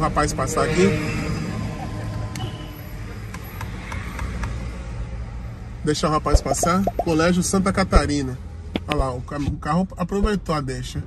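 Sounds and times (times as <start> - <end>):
car engine rumble and road noise: 3.0 - 11.0.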